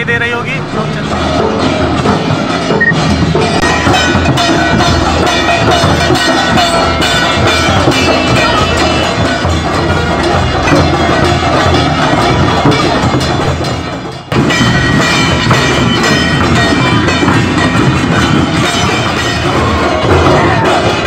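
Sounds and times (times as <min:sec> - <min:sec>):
drums beaten with sticks: 0:00.0 - 0:21.0.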